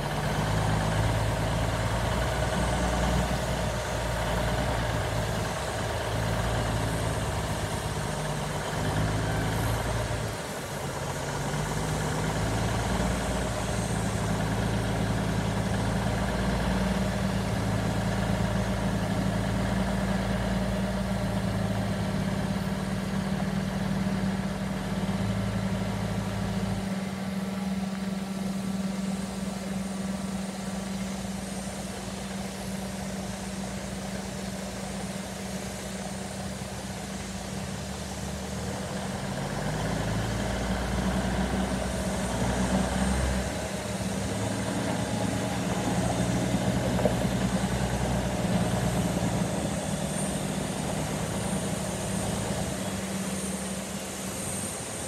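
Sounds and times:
diesel truck engine running: 0:00.0 - 0:55.0.

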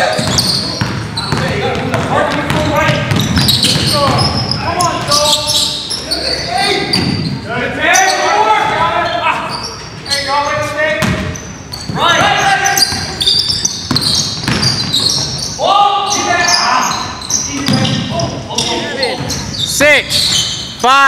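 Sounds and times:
players shouting: 0:00.0 - 0:11.0, 0:11.8 - 0:14.2, 0:15.0 - 0:20.2
basketball bouncing on wooden floor: 0:00.1 - 0:05.2, 0:13.8 - 0:15.4, 0:17.6 - 0:18.2.

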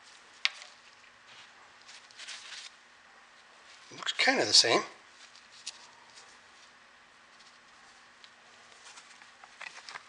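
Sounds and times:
soft handling rustles: 0:00.0 - 0:10.0.

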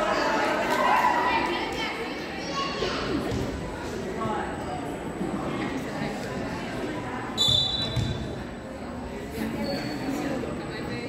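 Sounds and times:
referee's whistle blast: 0:07.4 - 0:08.1.

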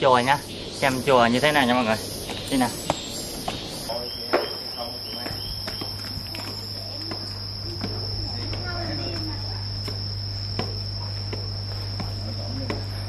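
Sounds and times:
high-pitched insect drone: 0:00.0 - 0:13.0
footsteps on stone stairs: 0:04.4 - 0:12.9.

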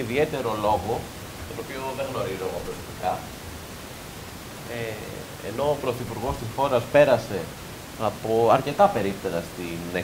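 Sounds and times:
men talking: 0:00.0 - 0:03.5, 0:04.5 - 0:10.0
steady background hiss: 0:00.0 - 0:10.0.

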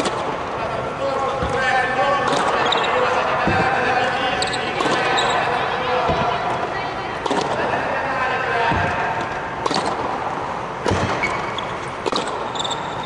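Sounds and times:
tennis balls bouncing on court: 0:00.0 - 0:00.3, 0:01.3 - 0:07.7, 0:08.6 - 0:12.8
tennis balls hit with rackets: 0:00.0 - 0:00.3, 0:03.4 - 0:05.3, 0:06.0 - 0:07.8, 0:08.6 - 0:12.7.

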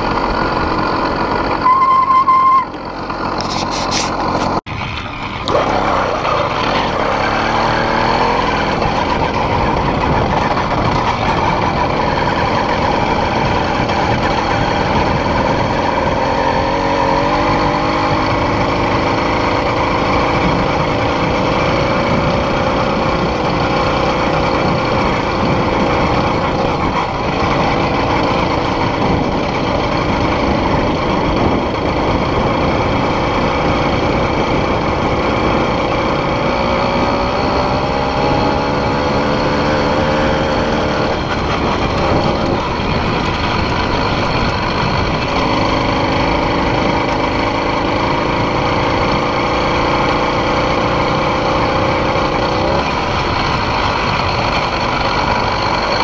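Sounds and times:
two-stroke engine revving: 0:00.0 - 0:56.0.

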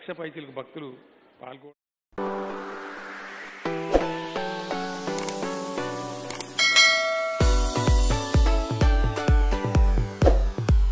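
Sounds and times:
synth outro music: 0:02.2 - 0:10.9
bright bell-like chime: 0:06.6 - 0:08.1.

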